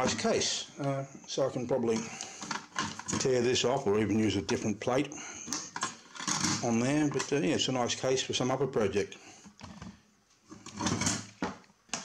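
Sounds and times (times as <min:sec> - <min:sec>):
metal scrape and clatter: 0:05.8 - 0:07.3, 0:10.6 - 0:11.3.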